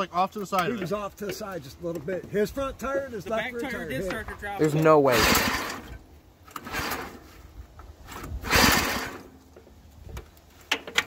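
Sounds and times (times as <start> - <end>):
recoil starter rope pulled: 3.2 - 11.0.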